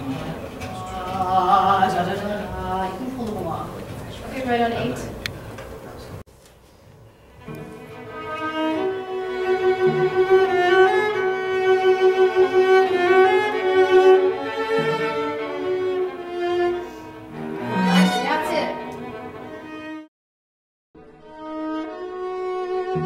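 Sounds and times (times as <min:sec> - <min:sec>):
string quartet playing: 0:07.3 - 0:20.1, 0:21.1 - 0:23.0.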